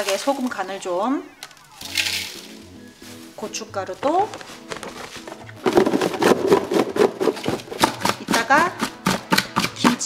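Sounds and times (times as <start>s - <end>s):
light background music: 0.0s - 10.0s
radish chunks rattling in plastic container: 4.3s - 10.0s.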